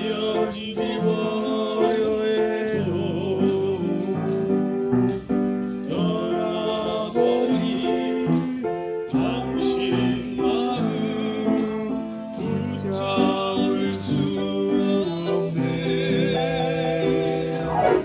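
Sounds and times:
person singing: 0.0 - 4.9, 5.7 - 18.0
piano chords and melody: 0.0 - 18.0.

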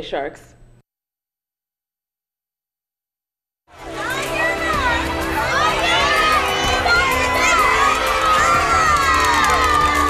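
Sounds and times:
children shouting and cheering: 3.8 - 10.0.

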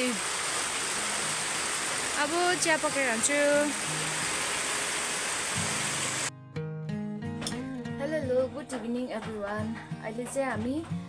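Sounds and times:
rain on a metal roof: 0.0 - 6.3.

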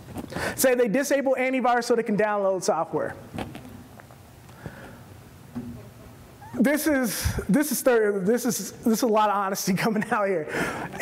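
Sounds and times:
faint hum: 0.0 - 11.0
man speaking: 0.6 - 3.2, 6.4 - 11.0.

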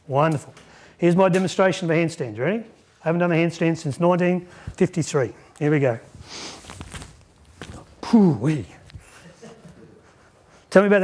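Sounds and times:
feet thumping and shuffling: 6.0 - 10.5.

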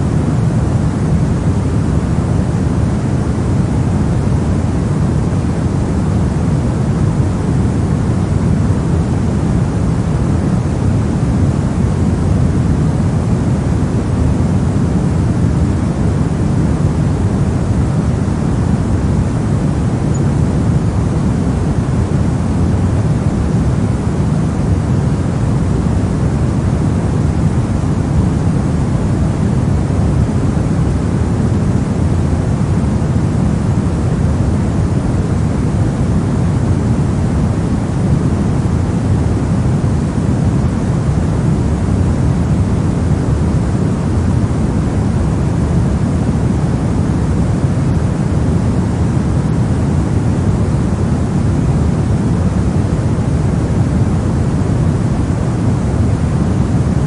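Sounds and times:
pink noise: 0.0 - 57.0.

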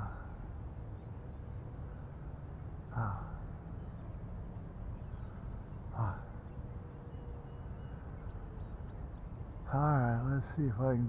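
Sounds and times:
faint bird chirps: 0.0 - 11.0
low wind rumble: 0.0 - 11.0.

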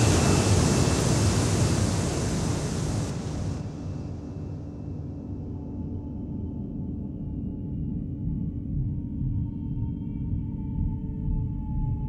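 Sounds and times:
synthesized noise wash: 0.0 - 4.3.

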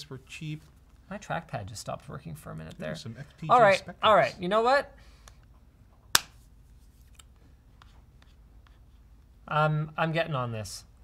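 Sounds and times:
sharp snap: 6.1 - 6.4.

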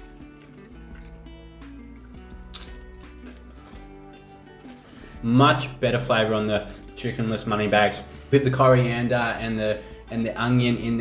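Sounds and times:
soft background music: 0.0 - 11.0
crunchy pastry being bitten: 0.9 - 3.9.

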